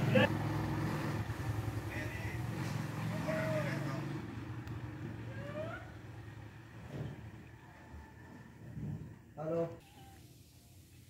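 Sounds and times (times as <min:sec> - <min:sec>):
low engine rumble: 0:00.0 - 0:09.6.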